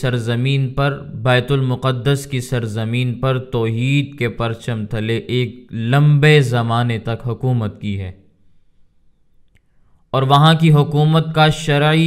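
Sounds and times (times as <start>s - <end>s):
man's voice: 0.0s - 8.2s, 10.2s - 12.0s
faint clicks: 9.3s - 9.7s.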